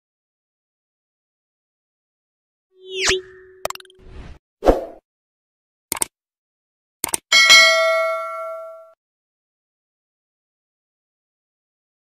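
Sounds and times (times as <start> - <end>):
button clicks: 2.9 - 4.0
notification bell ding: 7.4 - 9.0.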